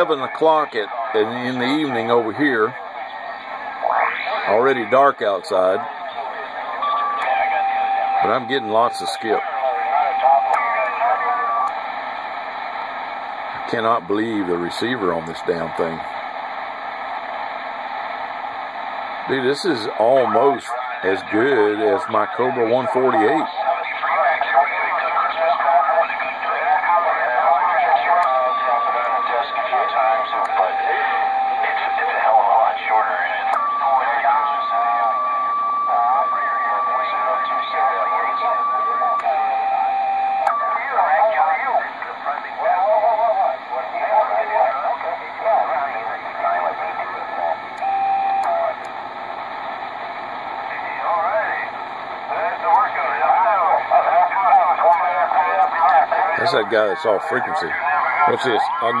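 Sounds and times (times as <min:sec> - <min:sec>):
radio voices through static: 0:00.0 - 0:16.2, 0:19.1 - 0:59.0
radio whistle tones: 0:06.1 - 0:11.8, 0:22.6 - 0:42.1, 0:46.1 - 0:48.8.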